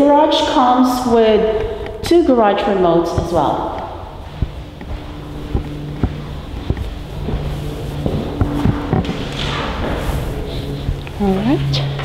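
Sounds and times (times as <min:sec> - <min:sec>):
steady low hum: 0:00.0 - 0:12.0
footsteps walking: 0:01.5 - 0:12.0.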